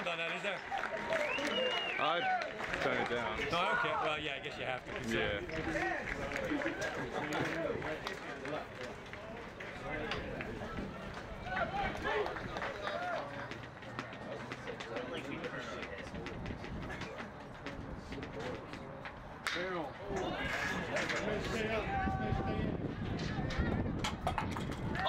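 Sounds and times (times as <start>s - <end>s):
crowd voices chattering: 0.0s - 25.0s.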